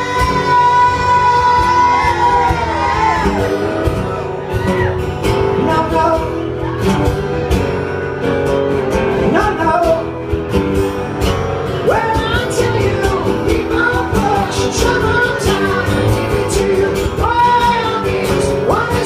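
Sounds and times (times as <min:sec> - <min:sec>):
man singing lead vocal: 0:00.0 - 0:04.2, 0:05.3 - 0:06.8, 0:09.1 - 0:10.2, 0:11.7 - 0:19.0
acoustic guitars strummed: 0:00.0 - 0:19.0.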